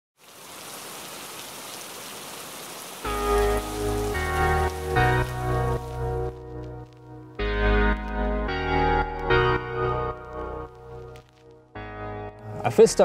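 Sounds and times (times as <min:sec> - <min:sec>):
steady rain: 0:00.2 - 0:08.3, 0:09.9 - 0:11.6
keyboard chords over deep bass: 0:03.1 - 0:13.0.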